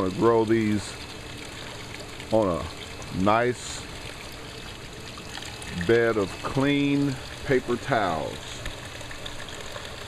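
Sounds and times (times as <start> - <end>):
water trickling onto stones: 0.0 - 10.0.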